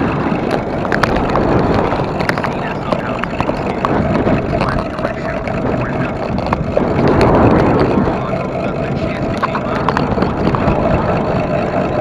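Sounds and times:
tyre rumble on paved path: 0:00.0 - 0:12.0
wind rushing over microphone: 0:00.0 - 0:12.0.

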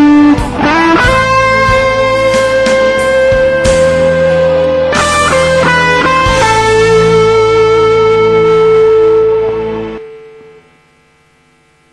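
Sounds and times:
electric guitar note ringing: 0:00.0 - 0:11.9
faint amplifier hum: 0:00.0 - 0:11.9.

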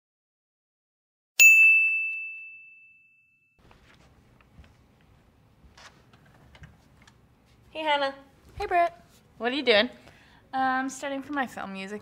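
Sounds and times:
high bell-like ding: 0:01.4 - 0:03.6.

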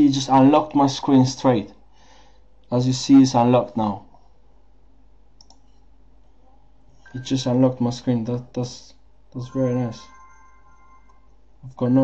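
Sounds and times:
low steady hum: 0:00.0 - 0:12.0
computer mouse click: 0:05.4 - 0:05.8.

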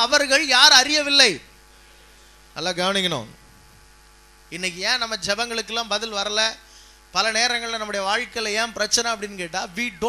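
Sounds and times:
man preaching: 0:00.0 - 0:01.5, 0:02.6 - 0:03.4, 0:04.5 - 0:06.6, 0:07.2 - 0:10.0
low electrical hum: 0:00.0 - 0:10.0.

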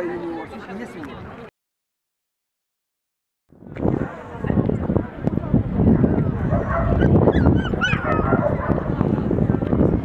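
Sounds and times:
crowd chatter: 0:00.0 - 0:01.5, 0:03.6 - 0:10.0
dog yipping: 0:06.6 - 0:08.8.

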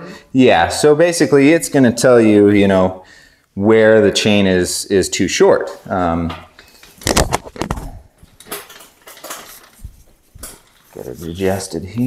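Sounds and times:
bicycle chain clicking and rattling: 0:08.4 - 0:09.8.

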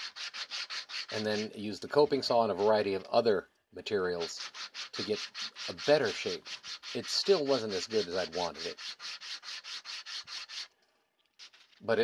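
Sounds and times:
hand sanding wood: 0:00.0 - 0:03.0, 0:04.2 - 0:10.7, 0:11.4 - 0:11.8.

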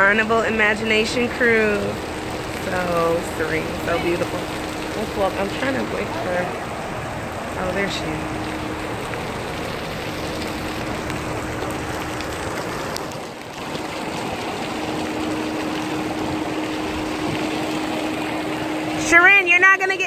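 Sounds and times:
constant hum: 0:00.0 - 0:20.0
water jets spraying: 0:00.0 - 0:20.0.

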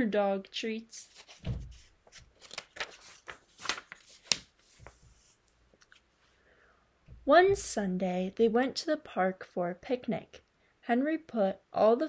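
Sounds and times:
book pages rustling and flicking: 0:01.0 - 0:06.2
low thump: 0:01.4 - 0:01.8.

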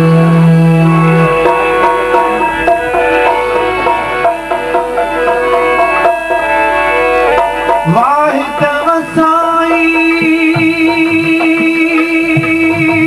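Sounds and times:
man singing: 0:00.0 - 0:01.5, 0:07.8 - 0:13.0
hand drum rhythm: 0:00.0 - 0:06.7, 0:07.3 - 0:13.0
harmonium melody: 0:00.0 - 0:13.0.

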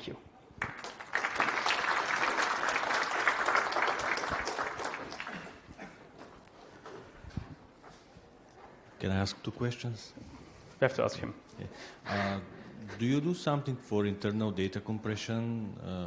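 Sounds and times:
audience applauding: 0:00.6 - 0:05.8.

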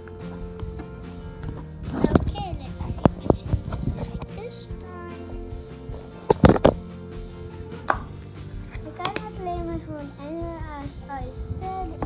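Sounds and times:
background music: 0:00.0 - 0:12.0
child's voice: 0:01.9 - 0:05.6, 0:08.8 - 0:12.0.

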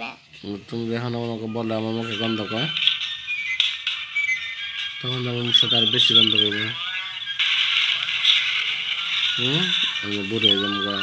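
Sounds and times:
faint high chirping: 0:00.0 - 0:07.4, 0:09.3 - 0:11.0.

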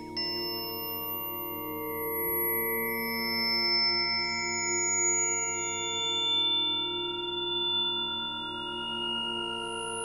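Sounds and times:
sine tone drone: 0:00.0 - 0:10.0.

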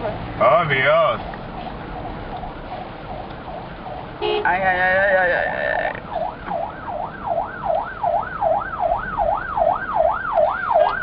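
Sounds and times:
car interior rumble: 0:00.0 - 0:11.0
faint siren wailing: 0:01.2 - 0:11.0.

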